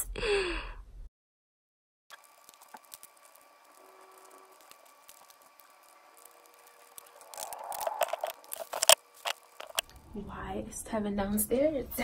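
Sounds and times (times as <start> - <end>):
clicks and rustles of handled food: 2.1 - 9.9.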